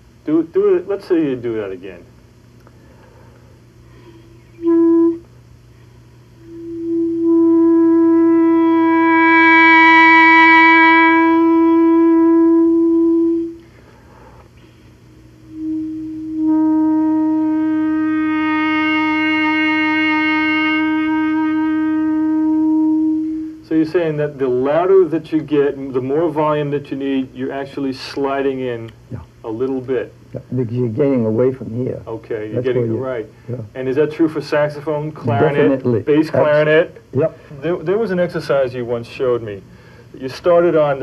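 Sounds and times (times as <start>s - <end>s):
clarinet notes: 3.9s - 5.3s, 6.4s - 13.7s, 15.4s - 23.7s, 35.2s - 37.5s.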